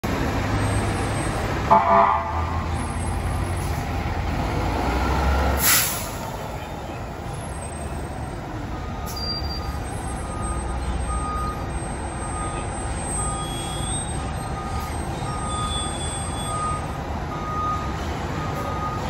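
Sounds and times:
air brake hiss: 0:05.6 - 0:06.2.

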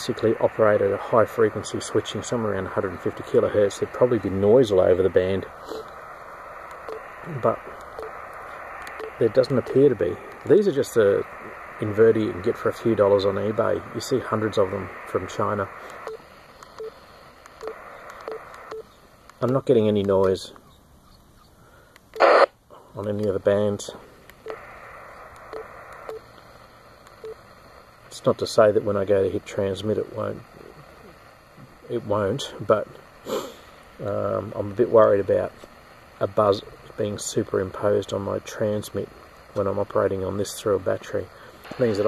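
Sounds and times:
radio band noise hiss: 0:00.0 - 0:42.0
short radio beeps: 0:05.6 - 0:05.9, 0:08.9 - 0:09.8, 0:15.8 - 0:17.0, 0:17.6 - 0:18.9, 0:22.1 - 0:22.5, 0:27.2 - 0:27.4.

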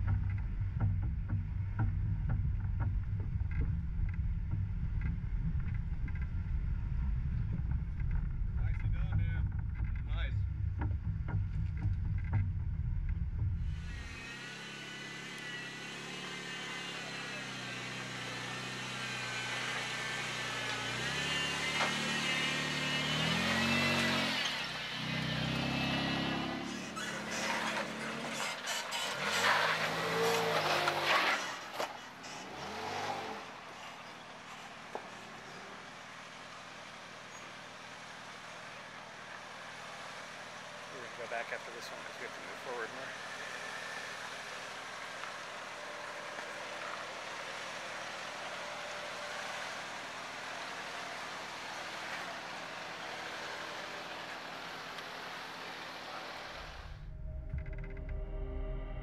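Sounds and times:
vehicle rumbling over dirt trail: 0:00.0 - 0:59.0
engine revving in surges: 0:13.1 - 0:59.0.

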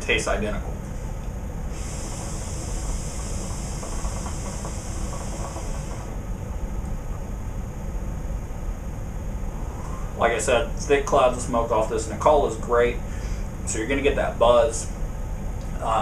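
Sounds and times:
low room rumble: 0:00.0 - 0:16.0
hookah bubbling hiss: 0:01.7 - 0:06.2.

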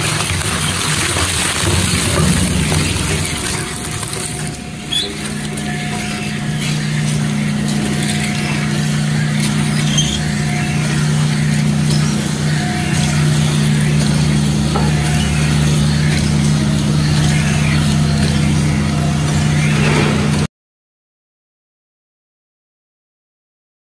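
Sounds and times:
shredder humming: 0:00.0 - 0:20.5.

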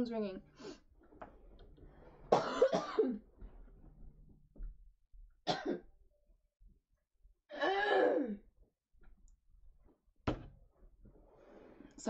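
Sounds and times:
woman coughing: 0:02.3 - 0:03.2, 0:05.5 - 0:05.8.

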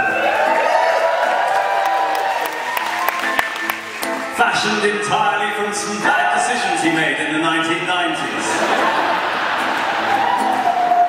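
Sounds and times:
audience cheering and applauding: 0:00.0 - 0:04.8, 0:08.5 - 0:11.0
separate handclaps: 0:02.1 - 0:04.3.

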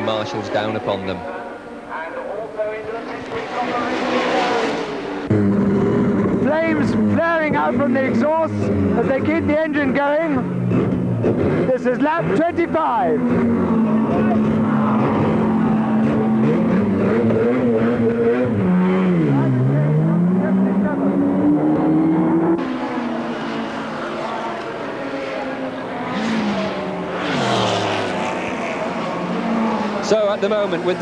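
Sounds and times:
race car passing at speed: 0:00.0 - 0:31.0
race car engine revving: 0:02.3 - 0:31.0.

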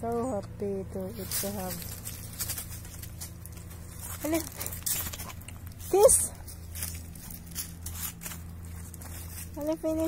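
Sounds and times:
steady low hum: 0:00.0 - 0:10.0
animal chewing soft crunches: 0:01.3 - 0:09.6.

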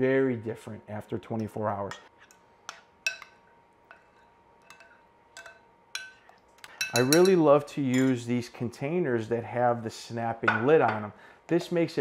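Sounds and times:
metal spoon clinking glass bowl: 0:02.2 - 0:08.2.

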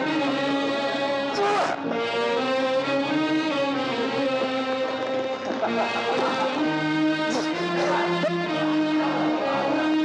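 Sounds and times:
film score with long held notes: 0:00.0 - 0:10.0.

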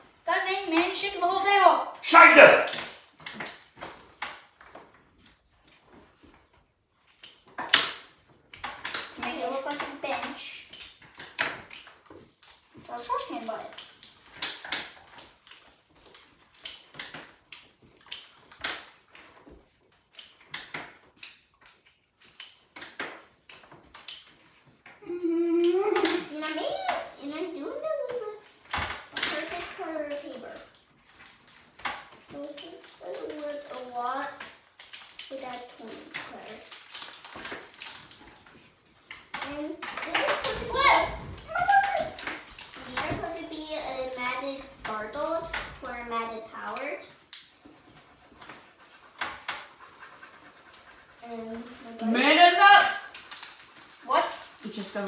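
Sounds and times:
markers scratching and tapping on paper: 0:26.0 - 0:55.0.

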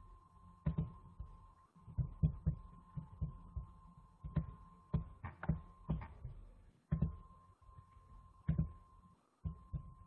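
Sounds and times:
soft low thumps: 0:00.6 - 0:07.3, 0:08.4 - 0:10.0
faint steady high tone: 0:07.0 - 0:10.0.

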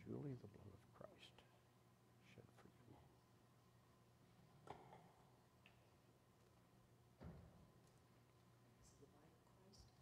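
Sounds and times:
soft whispered hiss: 0:00.0 - 0:07.0, 0:07.8 - 0:10.0.

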